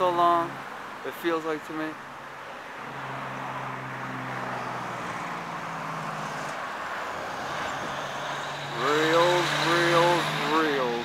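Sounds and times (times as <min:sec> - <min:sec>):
passing traffic: 0:00.0 - 0:11.0
vehicle engine humming: 0:01.9 - 0:11.0.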